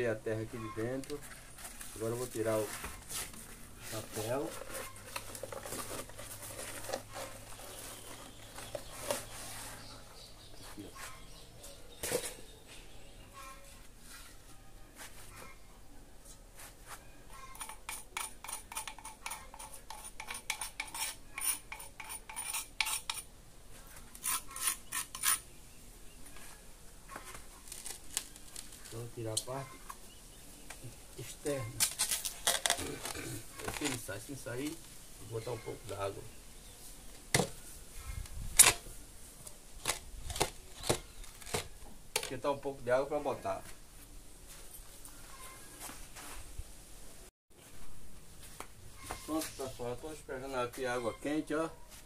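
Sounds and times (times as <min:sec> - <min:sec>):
paper crinkling: 0:01.0 - 0:09.8, 0:27.1 - 0:29.1, 0:31.8 - 0:34.1
metal tool scraping and tapping cement: 0:17.6 - 0:23.3, 0:24.2 - 0:25.4.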